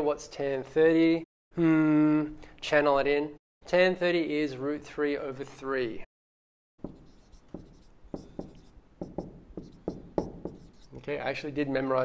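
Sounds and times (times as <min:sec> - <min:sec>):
marker writing on whiteboard: 0:06.8 - 0:11.1.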